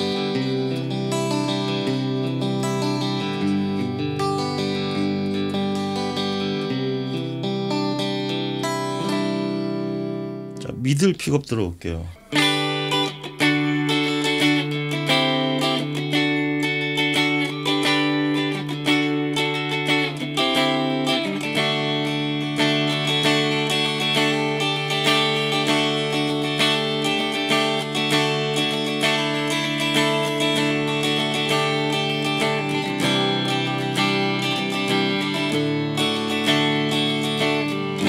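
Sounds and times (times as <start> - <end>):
clean electric guitar playing: 0.0 - 38.0.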